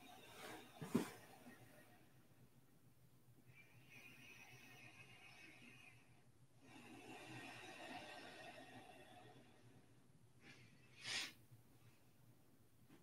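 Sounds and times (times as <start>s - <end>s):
faint slow breaths: 3.3s - 12.3s.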